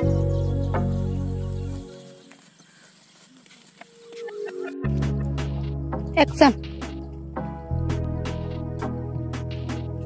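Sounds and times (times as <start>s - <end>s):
footsteps running on grass: 0.0s - 7.2s
faint outdoor noise: 0.0s - 10.0s.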